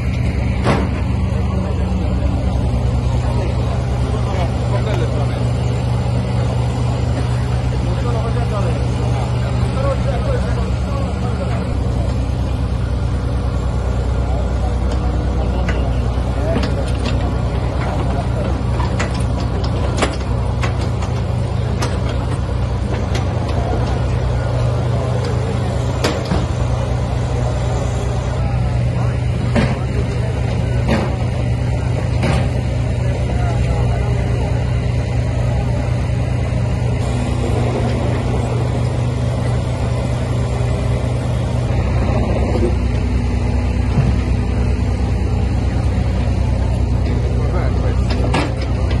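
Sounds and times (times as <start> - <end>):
diesel engine rumble: 0.0 - 49.0
sharp knocks and clanks: 0.1 - 1.2, 16.5 - 24.2, 26.0 - 26.8, 29.4 - 30.2, 30.8 - 31.4, 32.0 - 32.7, 43.8 - 44.4, 48.0 - 49.0.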